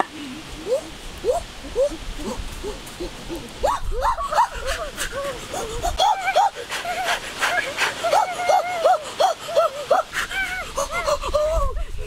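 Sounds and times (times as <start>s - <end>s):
boy hooting: 0.6s - 12.0s.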